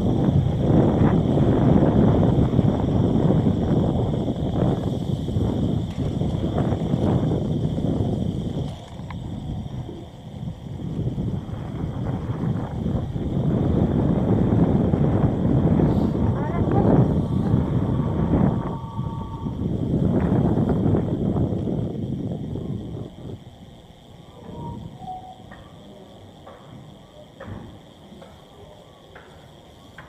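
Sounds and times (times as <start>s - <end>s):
wind buffeting microphone: 0.0s - 29.8s.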